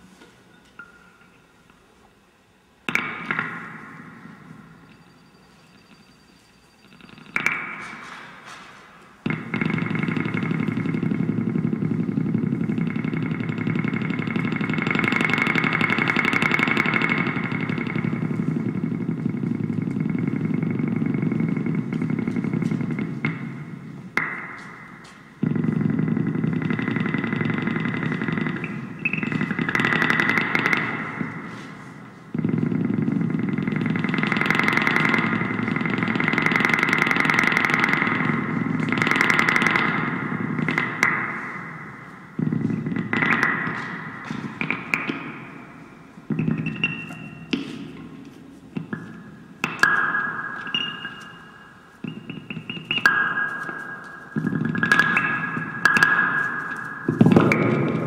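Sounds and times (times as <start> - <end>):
gritty electric guitar noise drone: 9.2 - 58.0.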